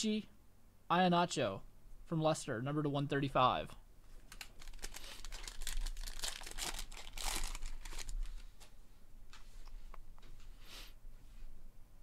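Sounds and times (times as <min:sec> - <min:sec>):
foil wrapper tearing and crinkling: 0:04.2 - 0:08.5.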